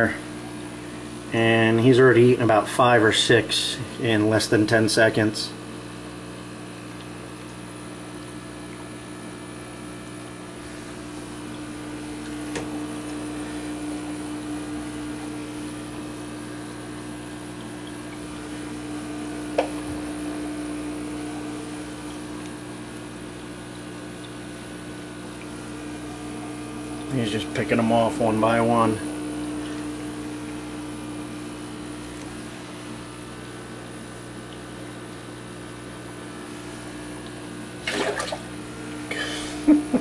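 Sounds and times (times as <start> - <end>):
aquarium pump hum: 0.0 - 40.0
faint water noise: 5.5 - 40.0
fish knocking on aquarium glass: 19.5 - 20.0.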